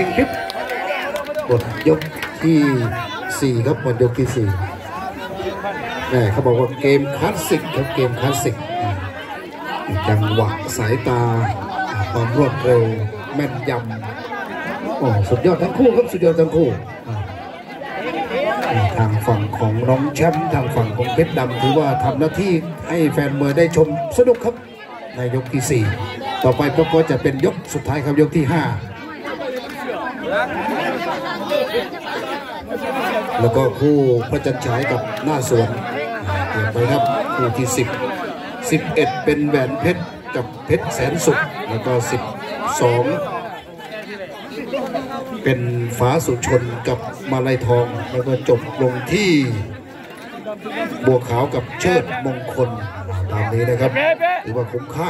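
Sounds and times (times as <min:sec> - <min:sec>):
man's amplified commentary: 0:00.0 - 0:17.4, 0:18.4 - 0:29.0, 0:33.1 - 0:43.7, 0:44.8 - 0:49.8, 0:50.7 - 0:55.0
chatter of several voices: 0:00.0 - 0:55.0.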